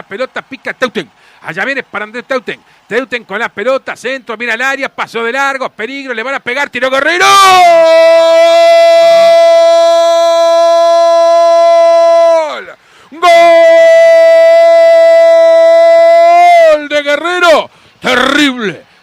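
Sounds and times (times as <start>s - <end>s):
commentator shouting goal: 0.0s - 18.8s
person speaking excitedly: 0.0s - 18.9s.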